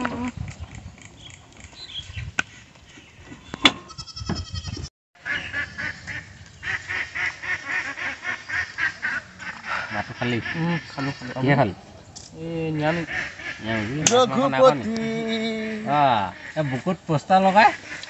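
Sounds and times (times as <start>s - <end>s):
ducks quacking: 5.2s - 11.8s, 12.6s - 18.0s.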